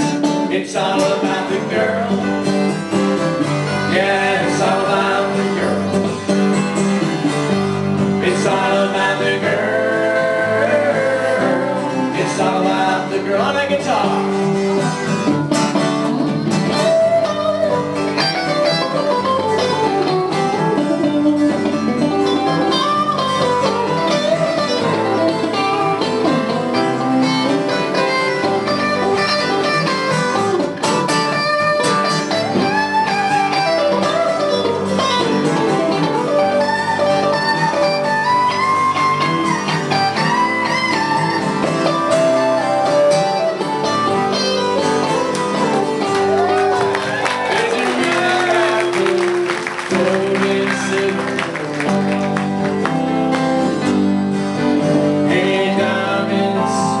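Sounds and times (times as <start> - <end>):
lead guitar line bending: 0.0 - 57.0
live band guitars playing: 0.0 - 57.0.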